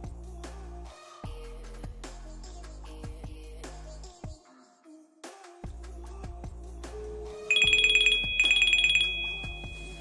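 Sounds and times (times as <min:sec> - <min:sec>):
smartwatch trilling ringtone: 0:07.5 - 0:10.0.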